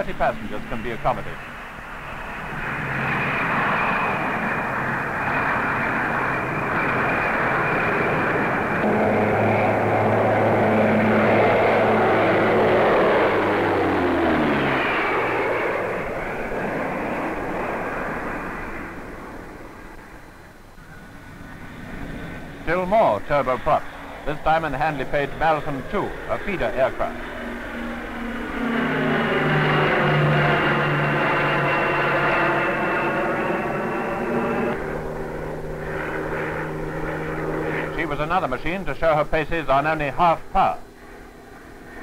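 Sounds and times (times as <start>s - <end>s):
turboprop aircraft flying past: 0.0s - 42.0s.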